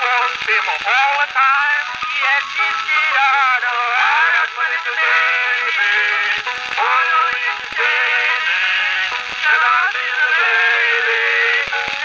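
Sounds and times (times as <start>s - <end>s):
thin old phonograph music: 0.0s - 12.0s.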